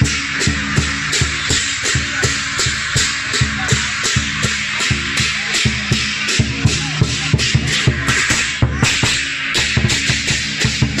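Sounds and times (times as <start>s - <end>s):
big drum beating: 0.0s - 11.0s
clashing cymbals: 0.0s - 11.0s.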